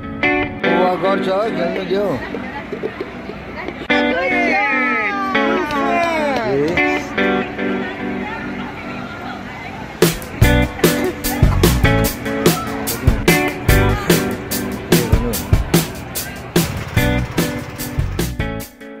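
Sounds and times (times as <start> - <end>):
steady drum beat: 10.0 - 18.8.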